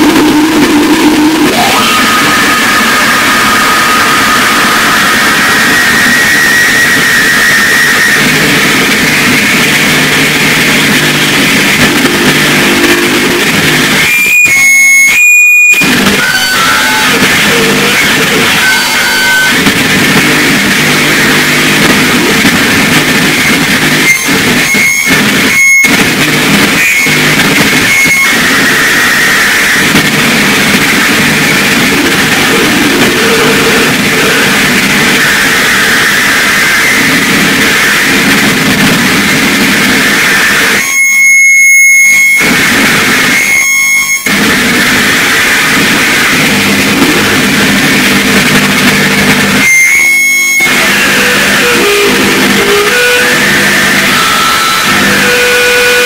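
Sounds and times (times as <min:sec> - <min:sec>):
distorted electronic noise: 0:00.0 - 0:56.0.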